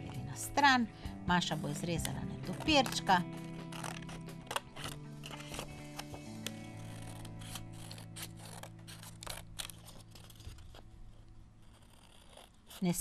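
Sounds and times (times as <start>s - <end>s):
background music with held notes: 0.0s - 10.1s
scissors snipping paper: 1.4s - 13.0s.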